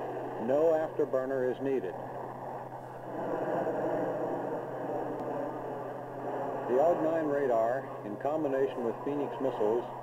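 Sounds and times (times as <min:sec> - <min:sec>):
jet engine roar: 0:00.0 - 0:10.0.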